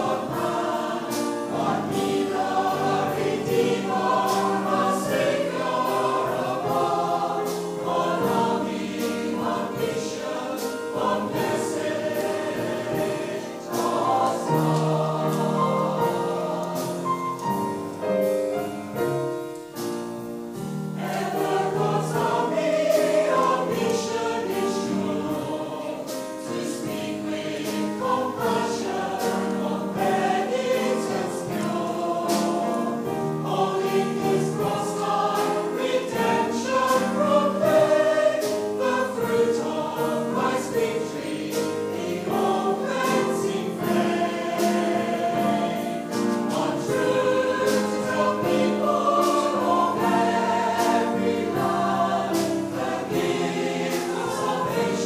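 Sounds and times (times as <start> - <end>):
mixed choir singing a hymn: 0.0 - 55.0
piano: 0.0 - 55.0.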